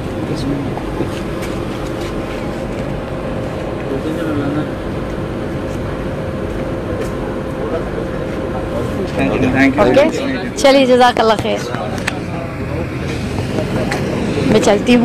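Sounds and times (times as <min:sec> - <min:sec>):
constant hum: 0:00.0 - 0:15.0
faint voices: 0:00.0 - 0:15.0.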